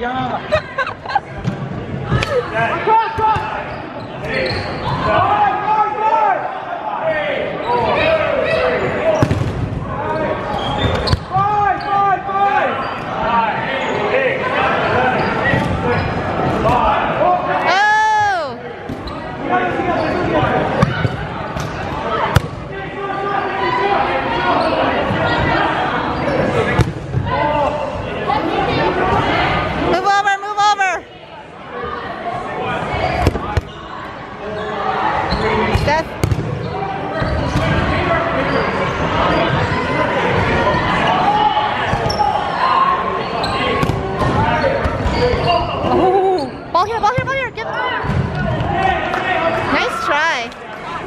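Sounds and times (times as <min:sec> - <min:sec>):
people calling out and cheering: 0:16.8 - 0:18.7, 0:45.4 - 0:51.0
balls bouncing on hardwood floor: 0:35.7 - 0:36.5.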